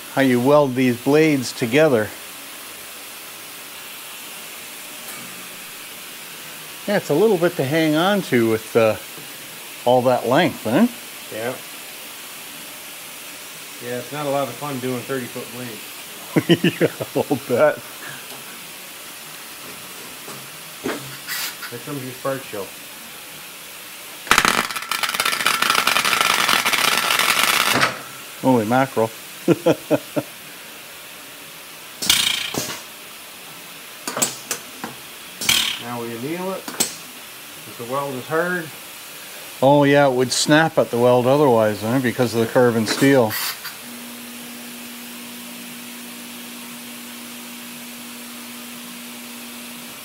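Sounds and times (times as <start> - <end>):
steady background hiss: 0.0 - 50.0
welder crackling: 4.7 - 30.4, 32.0 - 33.2, 34.0 - 44.0.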